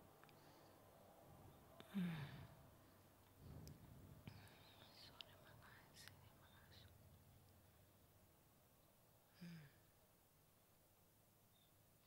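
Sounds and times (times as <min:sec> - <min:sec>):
faint whispering: 0:01.4 - 0:07.8.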